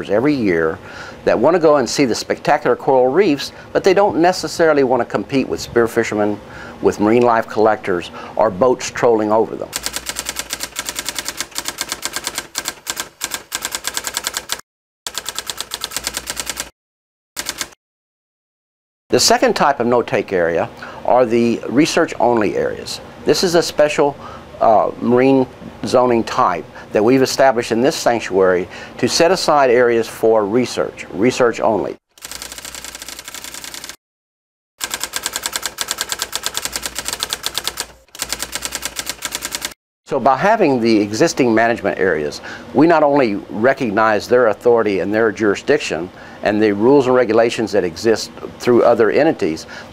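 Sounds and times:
rapid typing key clicks: 9.8 - 16.7, 17.4 - 17.8, 32.2 - 34.0, 34.8 - 39.8.

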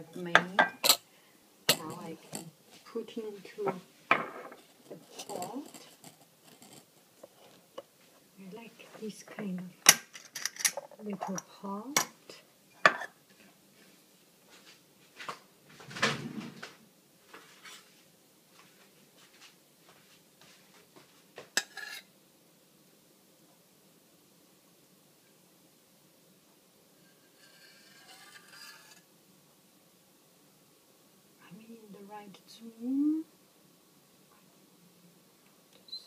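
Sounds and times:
faint scrape of pouring: 4.5 - 7.8, 27.0 - 29.0.

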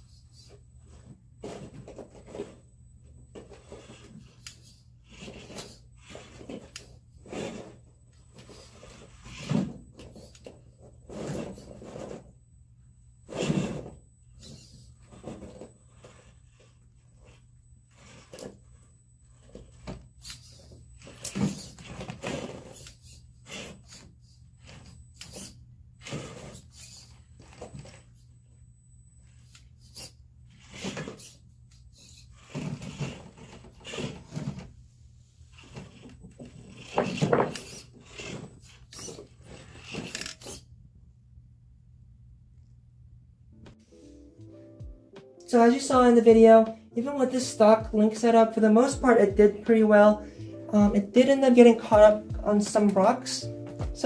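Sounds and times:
drivetrain whirring bursts: 0.0 - 43.8, 45.8 - 54.0.

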